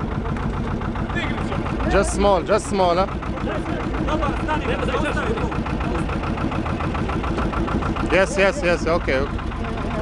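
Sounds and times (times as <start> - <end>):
boat engine idling: 0.0 - 10.0
faint voices: 0.0 - 10.0.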